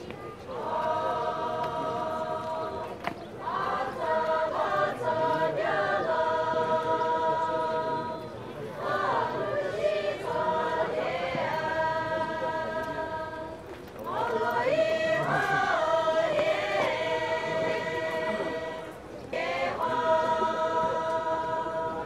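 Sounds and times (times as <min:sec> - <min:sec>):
women singing unaccompanied: 0:00.0 - 0:22.0.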